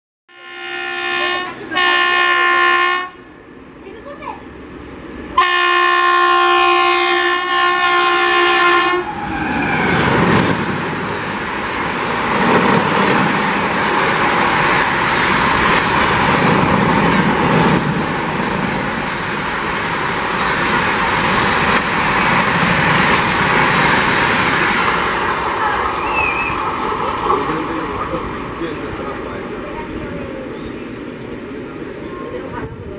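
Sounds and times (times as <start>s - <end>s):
electric locomotive horn blasts: 0.3s - 3.3s, 5.4s - 9.2s
train wheels on rails rushing: 3.6s - 32.9s.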